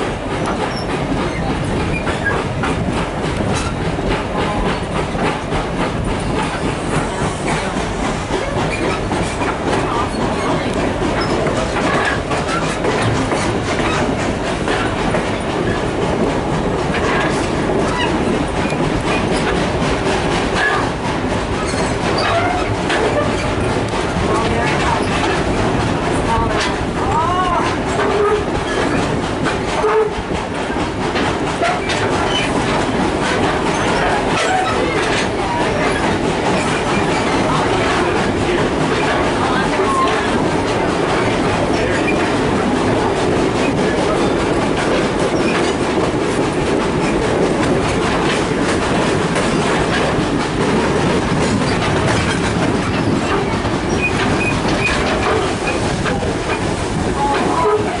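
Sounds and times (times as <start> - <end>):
train wheels on rails: 0.0 - 58.0.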